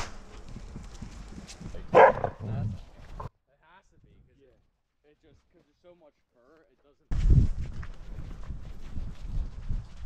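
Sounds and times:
dog barking: 1.9s - 2.5s.

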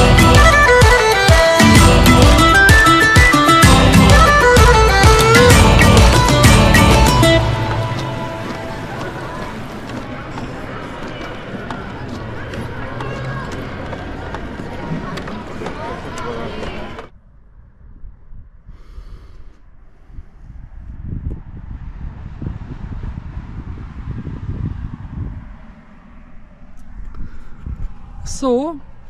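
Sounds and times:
indistinct voices: 3.7s - 17.1s.

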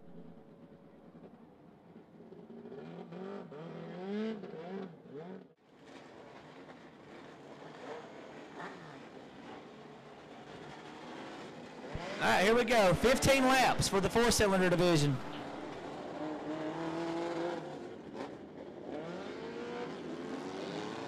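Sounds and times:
race cars running slowly: 0.0s - 21.0s
race car engine revving: 10.4s - 21.0s.

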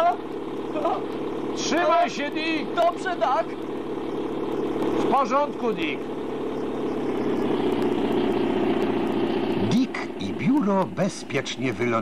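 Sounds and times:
crane engine droning: 0.0s - 12.0s.

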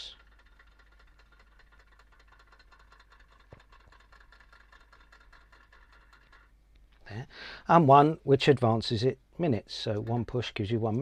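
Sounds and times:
clock movement ticking rapidly: 0.0s - 7.1s.

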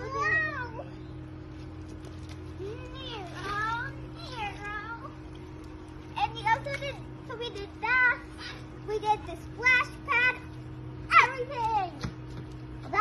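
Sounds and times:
child squealing: 0.0s - 0.9s
steady low hum: 0.0s - 13.0s.

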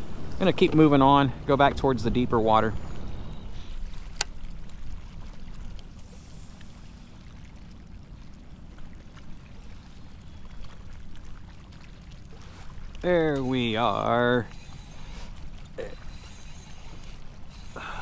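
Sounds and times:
water rushing along kayak hull: 0.0s - 18.0s.

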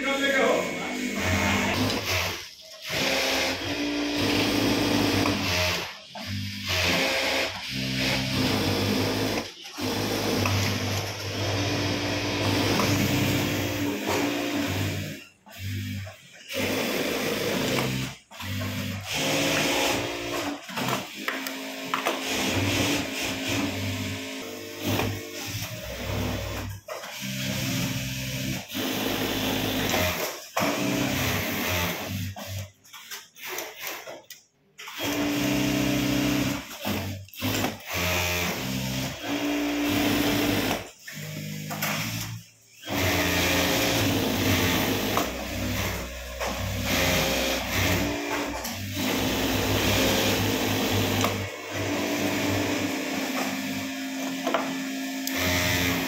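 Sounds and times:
sewing machine stitching: 0.2s - 56.0s.

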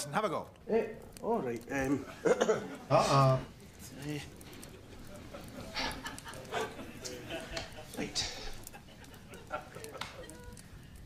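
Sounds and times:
low murmured voices: 0.8s - 11.0s.

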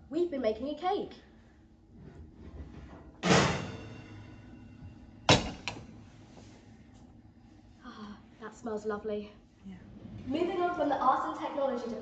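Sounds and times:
oven door banging shut: 3.2s - 4.0s, 5.3s - 5.8s.

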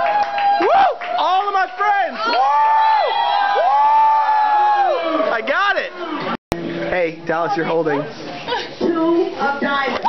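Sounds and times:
people whooping: 0.0s - 6.2s
crowd noise: 0.0s - 10.0s.

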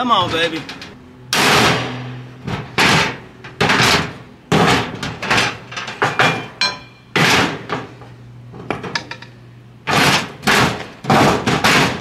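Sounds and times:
hammer clanging on steel bar: 6.0s - 7.4s.

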